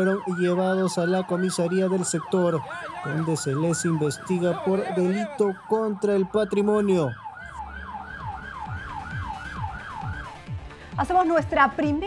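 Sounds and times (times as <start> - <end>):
siren in fast yelp pattern: 0.0 - 10.5.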